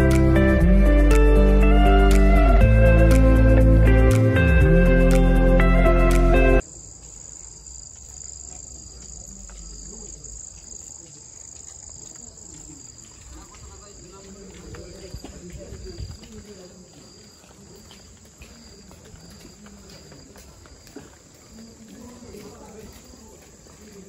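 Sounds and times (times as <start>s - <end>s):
crickets chirring: 6.6s - 24.0s
faint voices talking: 8.0s - 24.0s.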